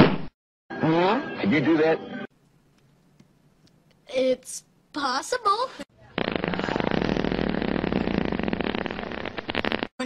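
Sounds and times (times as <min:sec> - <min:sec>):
fart sound effect: 0:06.1 - 0:10.0.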